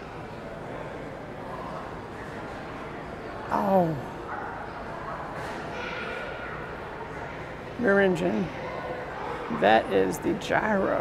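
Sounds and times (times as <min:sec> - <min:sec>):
faint distant voices: 0:00.0 - 0:11.0
indoor hall background noise: 0:00.0 - 0:11.0.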